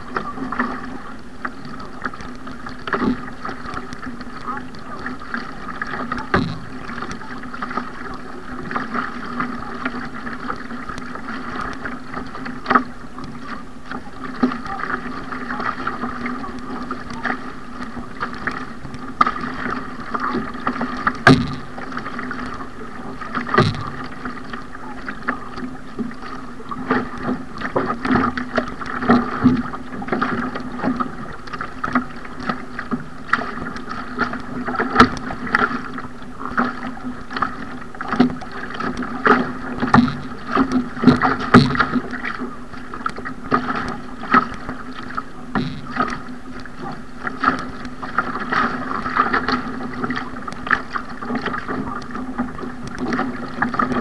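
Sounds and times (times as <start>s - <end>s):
hull and paddle slapping water: 0.0s - 54.0s
water rushing along hull: 0.0s - 54.0s.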